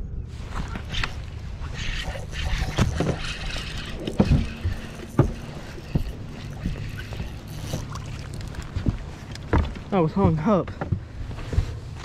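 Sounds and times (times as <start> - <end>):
low steady rumble: 0.0 - 12.0
dull knocks and thumps on boat: 2.5 - 12.0.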